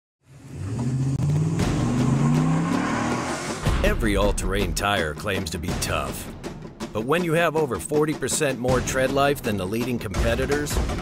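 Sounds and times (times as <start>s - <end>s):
truck engine revving: 0.2s - 3.9s
tyre and road noise: 0.3s - 3.9s.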